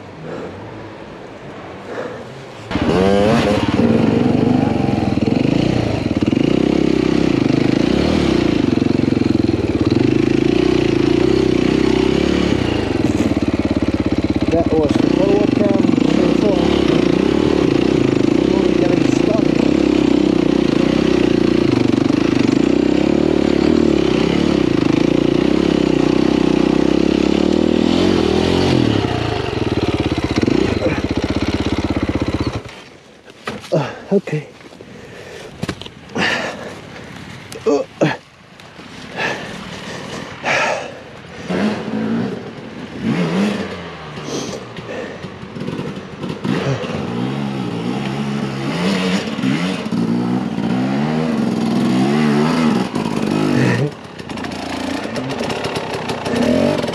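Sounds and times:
dirt bike engine running: 0:01.9 - 0:33.0, 0:39.0 - 0:56.9.

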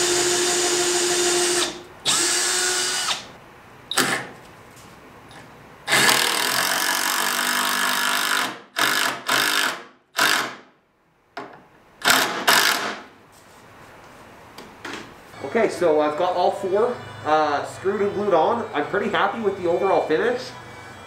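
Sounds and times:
power drill driving screws into wood: 0:00.0 - 0:03.3, 0:05.9 - 0:10.6, 0:12.0 - 0:13.0.

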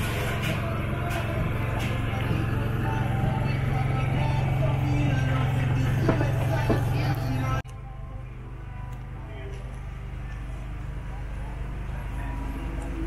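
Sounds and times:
music: 0:00.0 - 0:13.0
steady low hum: 0:00.0 - 0:13.0
voices: 0:00.1 - 0:07.6.

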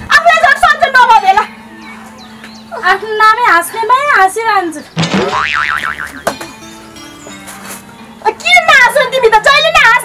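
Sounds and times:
quiet background music: 0:00.0 - 0:10.0
cartoon boing sound effect: 0:05.2 - 0:06.4.

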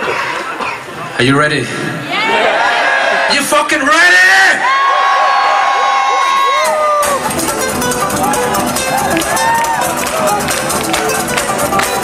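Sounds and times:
crowd whooping and cheering: 0:02.1 - 0:03.4, 0:04.5 - 0:07.4, 0:08.0 - 0:12.0
acoustic guitars strumming: 0:07.0 - 0:12.0.

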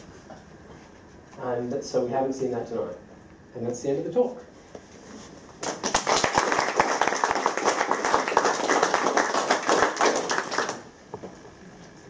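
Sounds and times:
audience applauding: 0:05.6 - 0:10.9.

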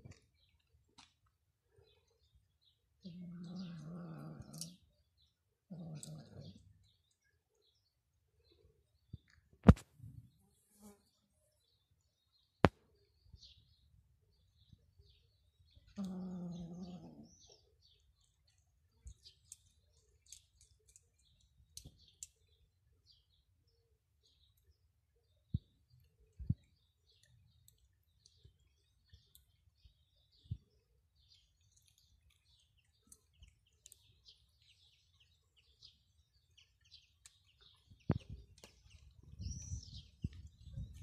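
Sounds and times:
faint bird chirps: 0:01.7 - 0:09.4, 0:10.4 - 0:41.0
cat growling: 0:03.0 - 0:04.9, 0:05.7 - 0:06.7, 0:16.0 - 0:17.6.

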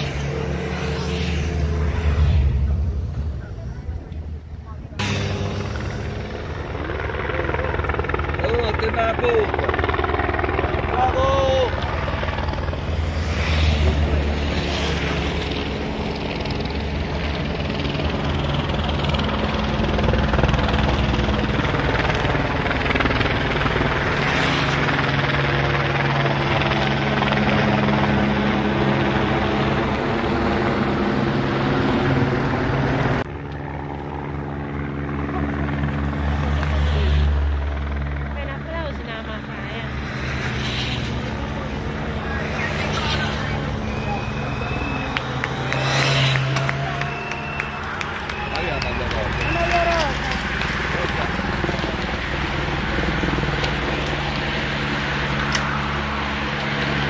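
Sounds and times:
helicopter flying overhead: 0:00.0 - 0:57.0.

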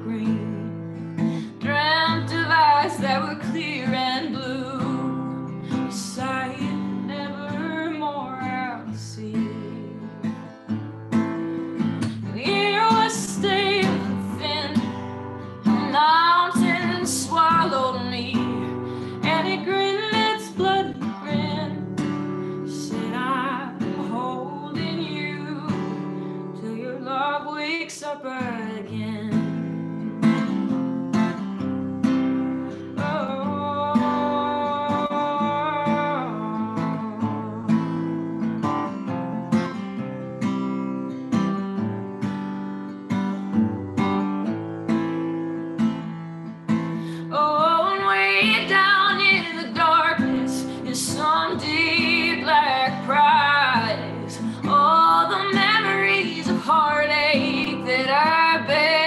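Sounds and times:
woman singing: 0:00.0 - 0:30.8, 0:31.6 - 0:39.3, 0:45.2 - 0:59.0
acoustic guitar: 0:00.0 - 0:59.0.

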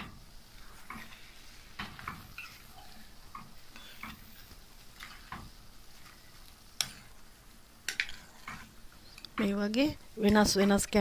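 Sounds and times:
faint frying: 0:00.0 - 0:11.0
metal spoon scraping a frying pan: 0:07.9 - 0:09.3.

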